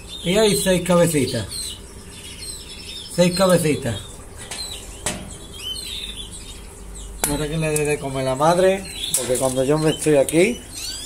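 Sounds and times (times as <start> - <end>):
songbirds chirping and whistling: 0.0 - 11.0.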